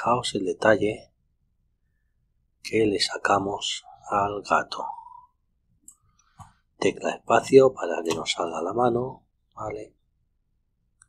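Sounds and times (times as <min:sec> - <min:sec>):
man speaking: 0:00.0 - 0:01.2, 0:02.6 - 0:05.3, 0:06.8 - 0:10.0.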